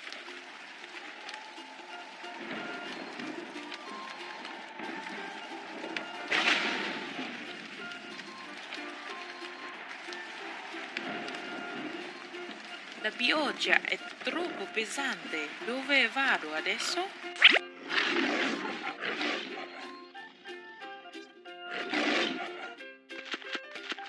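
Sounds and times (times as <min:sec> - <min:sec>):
rain hissing: 0:00.0 - 0:20.6
background music: 0:00.0 - 0:24.0.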